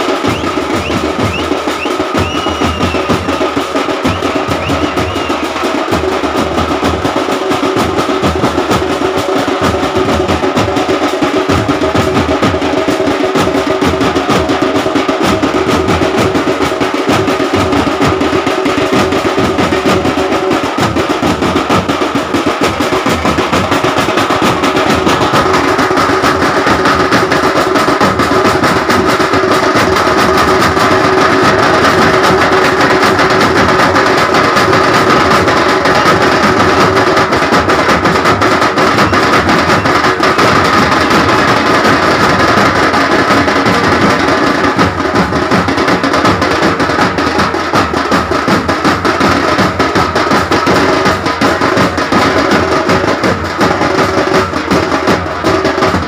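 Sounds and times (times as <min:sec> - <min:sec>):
loud fast drumming: 0:00.0 - 0:56.0.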